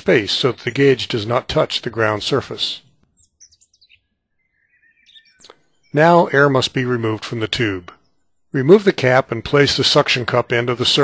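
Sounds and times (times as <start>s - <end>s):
faint bird chirps: 2.8s - 9.4s.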